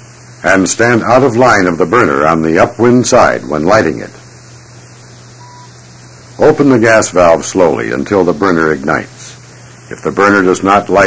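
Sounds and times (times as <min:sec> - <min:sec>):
low hum and hiss: 0:00.0 - 0:11.0
short thin beep: 0:05.4 - 0:05.8.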